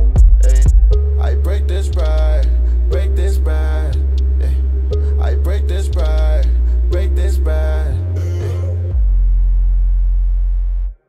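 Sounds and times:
deep bass note of hip-hop track: 0.0 - 11.0.

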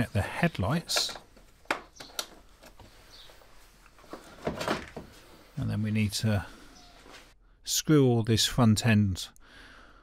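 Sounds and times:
sharp plastic clicks: 0.9 - 2.8
plastic knocks and scraping: 4.0 - 5.3.

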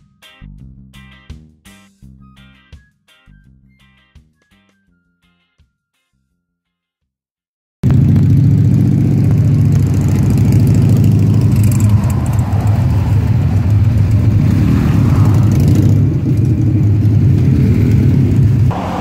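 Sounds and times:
motorcycle engines running: 7.8 - 19.0.

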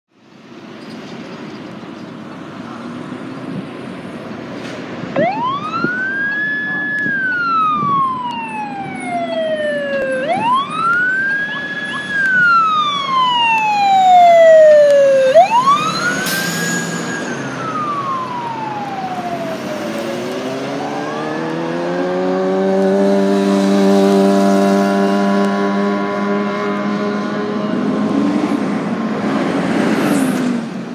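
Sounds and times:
heavy vehicle engine accelerating: 0.8 - 30.9
fire engine siren wailing: 5.1 - 29.3.

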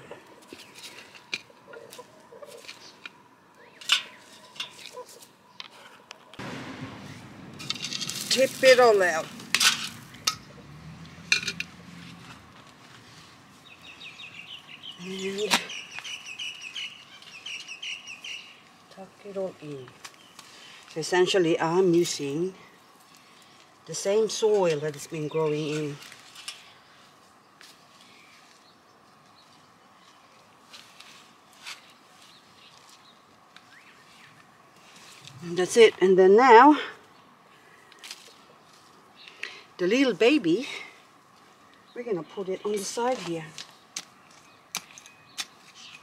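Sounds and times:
soft scrapes of soil: 11.6 - 13.9, 25.6 - 28.8, 29.4 - 35.5
soft rustling: 11.9 - 14.6, 24.5 - 36.1
small birds chirping: 12.9 - 21.3, 21.9 - 30.7, 31.3 - 35.9, 37.0 - 46.0.

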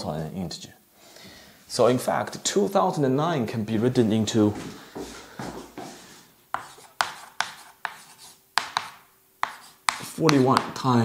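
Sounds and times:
chalk striking blackboard: 5.0 - 10.9
soft knocks on blackboard: 8.6 - 10.8.

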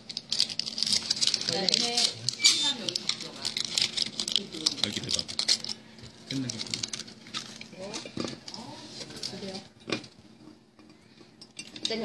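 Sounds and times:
foil wrapper crinkling: 0.0 - 9.6.

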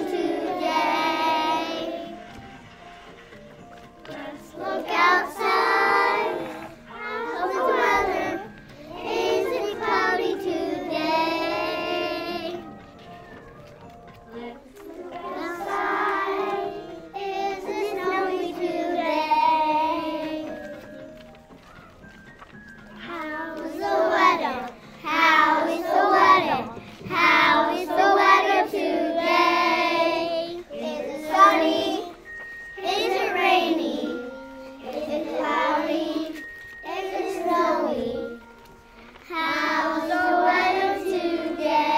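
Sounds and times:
young children singing: 0.0 - 3.2, 4.0 - 12.9, 13.8 - 21.2, 22.9 - 41.9.

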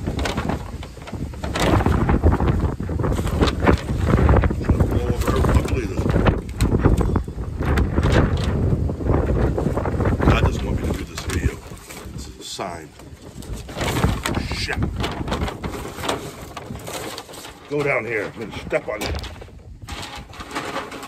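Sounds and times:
gusting wind buffeting microphone: 0.0 - 21.0.

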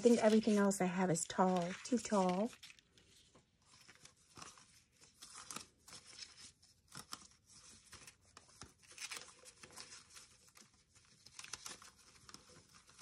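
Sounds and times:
paper rustling: 0.0 - 13.0.

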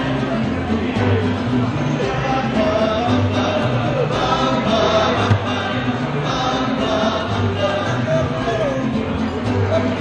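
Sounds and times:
steady bass line: 0.0 - 10.0
voices singing together: 0.0 - 10.0.

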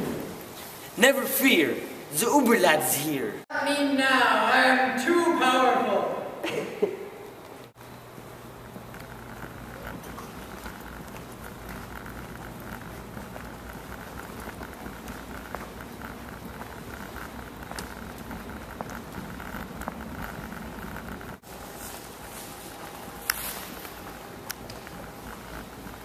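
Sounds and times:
background hum and hiss: 0.0 - 26.0
faint clicks and taps: 7.4 - 21.4.

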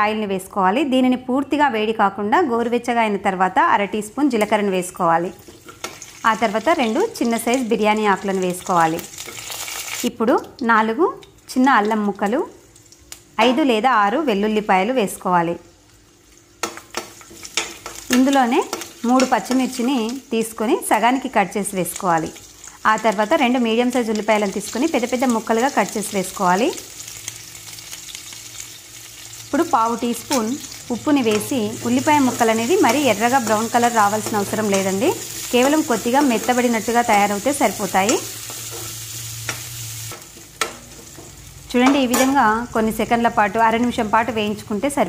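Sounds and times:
spices sizzling in hot oil: 3.6 - 45.0.

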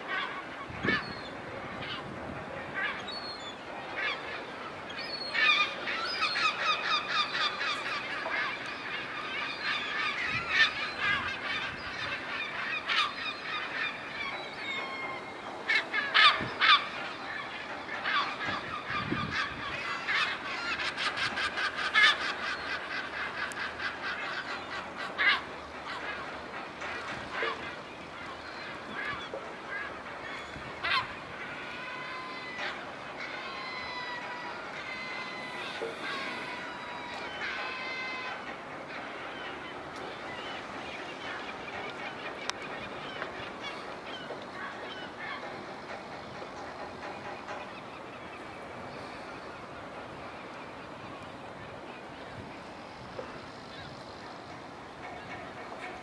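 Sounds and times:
gulls calling: 0.0 - 56.0.

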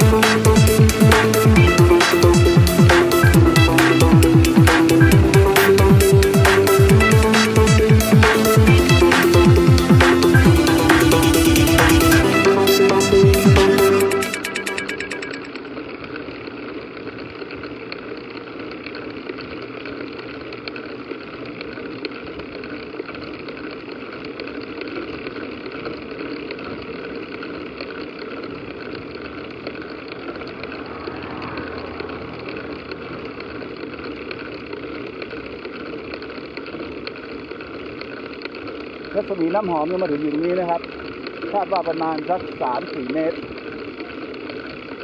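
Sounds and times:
bicycle rolling on paved road: 0.0 - 12.4, 14.1 - 45.0
electronic music: 0.0 - 15.6.

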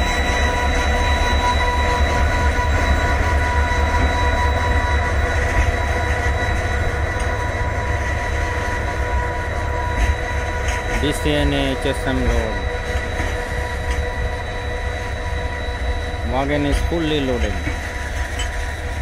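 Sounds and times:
diesel locomotive engine rumble: 0.0 - 19.0
high-pitched whine: 0.0 - 19.0.

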